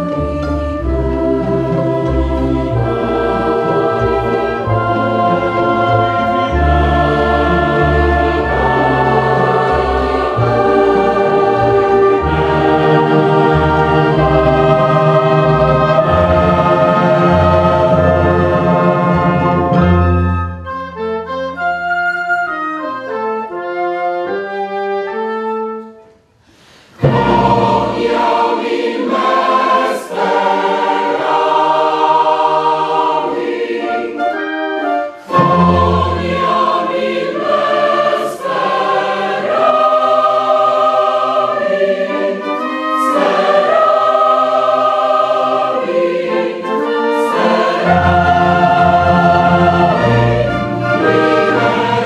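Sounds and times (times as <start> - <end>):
choir singing with orchestra: 0.0 - 21.8, 26.4 - 52.0.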